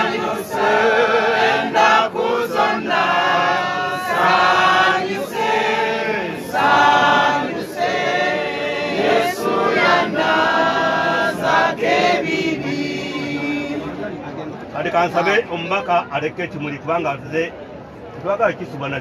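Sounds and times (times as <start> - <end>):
group singing a hymn: 0.0 - 14.1.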